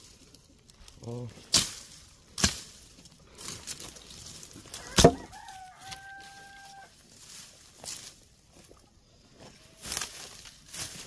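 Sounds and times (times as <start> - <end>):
knocks and rustles of brush: 1.3 - 5.7
rooster crowing: 4.7 - 7.0.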